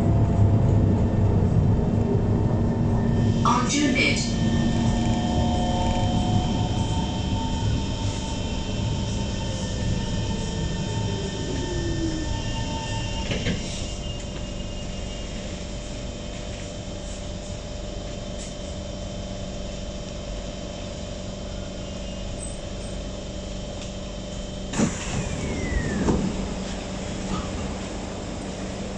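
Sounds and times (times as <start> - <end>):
train ventilation hum: 0.0 - 28.9
train traction motors whining: 1.4 - 15.6, 21.6 - 28.9
brief falling squeal: 24.8 - 26.4.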